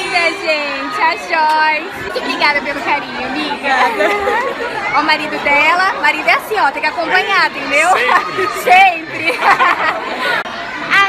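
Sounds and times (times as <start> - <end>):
crowd chatter: 0.0 - 11.0
people talking close by: 0.0 - 11.0.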